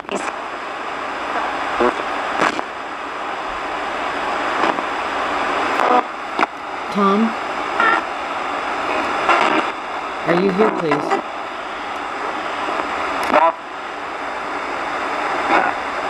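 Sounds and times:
radio static hiss: 0.0s - 16.0s
chopped broadcast voice fragments: 8.9s - 11.3s.

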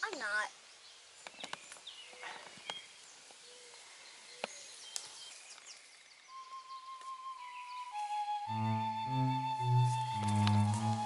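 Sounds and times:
birds chirping: 0.0s - 11.0s
held flute-like note: 6.3s - 11.0s.

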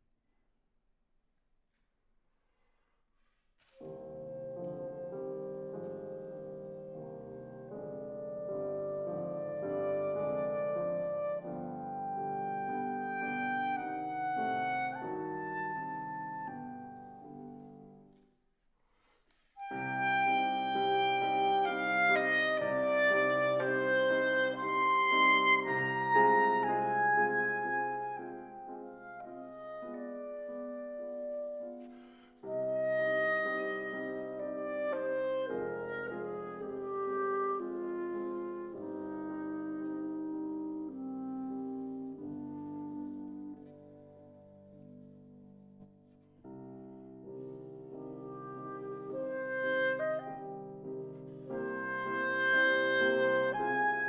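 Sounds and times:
grand piano: 3.6s - 18.4s, 19.0s - 54.0s
clarinet: 3.7s - 18.0s, 19.6s - 45.0s, 46.5s - 54.0s.

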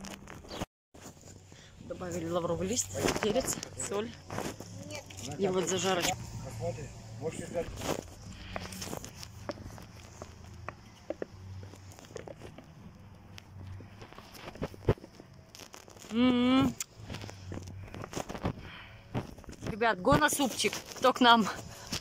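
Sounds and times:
fire crackling: 1.2s - 22.0s.

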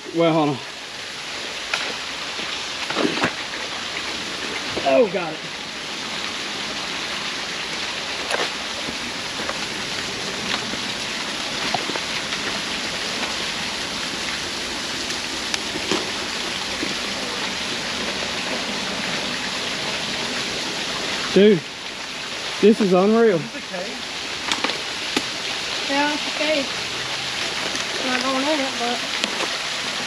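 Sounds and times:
creek water rushing: 0.0s - 30.0s.

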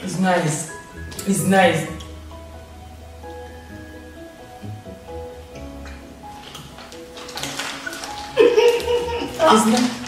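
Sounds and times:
soft background music: 0.0s - 10.0s
plastic snack bag crinkling: 6.3s - 10.0s.

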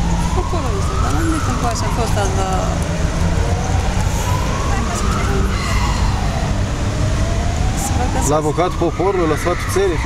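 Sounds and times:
steady low rumble: 0.0s - 8.2s
distant siren wailing: 0.0s - 10.0s.

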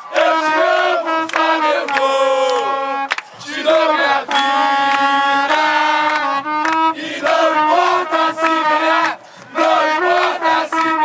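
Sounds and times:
football supporters chanting: 0.0s - 11.0s
trumpets holding notes: 0.0s - 11.0s.

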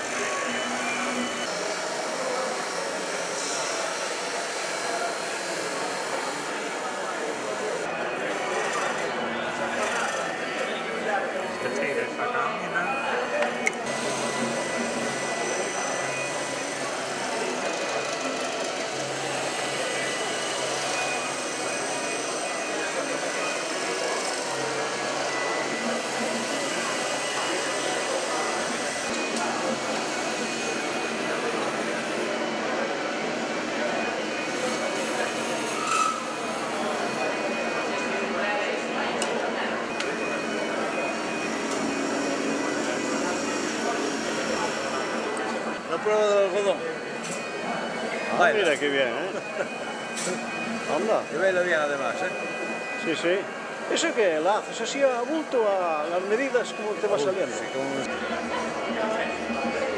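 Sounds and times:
gouges cutting spinning wood: 13.9s - 24.8s
wood lathes running: 13.9s - 29.2s.

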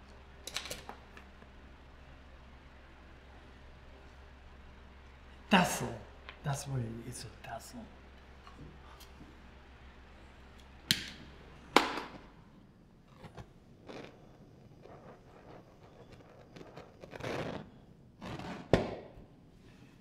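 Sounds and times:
torch igniter clicks: 10.6s - 12.2s
torch flame hissing: 13.1s - 18.8s.

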